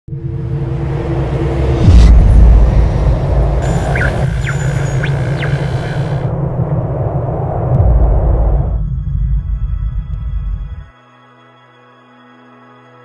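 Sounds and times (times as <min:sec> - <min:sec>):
steady low rumble: 0:00.1 - 0:10.9
deep cinematic boom hits: 0:01.3 - 0:10.9.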